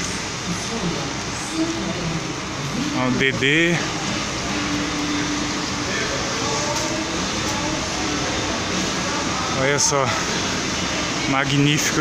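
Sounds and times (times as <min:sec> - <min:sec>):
air-conditioning hum: 0:00.0 - 0:12.0
coach engines humming: 0:00.0 - 0:12.0
faint voices: 0:00.0 - 0:12.0.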